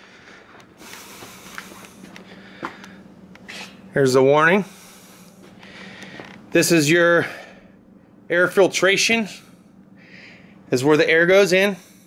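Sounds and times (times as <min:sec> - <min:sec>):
low hum: 0:00.0 - 0:12.0
short breaths: 0:04.6 - 0:06.4, 0:09.4 - 0:10.6.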